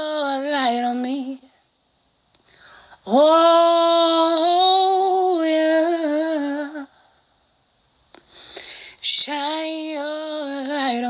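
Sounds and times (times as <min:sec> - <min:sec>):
breathy intake of breath: 0:02.4 - 0:03.0, 0:08.2 - 0:09.0.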